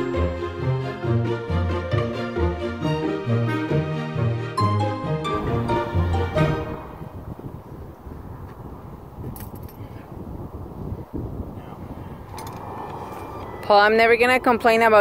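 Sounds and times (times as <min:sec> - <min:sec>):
background music: 0:00.0 - 0:07.2
wind: 0:00.0 - 0:15.0
highway traffic: 0:05.2 - 0:15.0.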